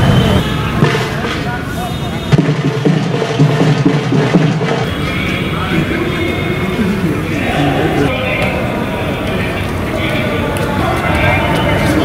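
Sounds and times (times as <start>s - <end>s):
crowd of people talking: 0.0s - 12.0s.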